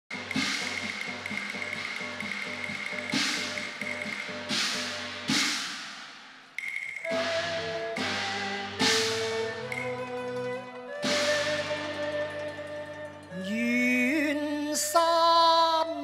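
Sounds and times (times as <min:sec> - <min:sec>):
loud cymbal-like crashes: 0:00.1 - 0:10.2
live opera ensemble music: 0:07.1 - 0:15.9.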